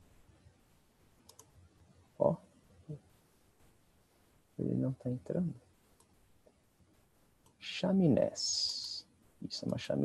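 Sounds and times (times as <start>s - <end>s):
computer mouse clicks: 1.2s - 1.6s, 6.0s - 6.2s, 8.6s - 8.9s.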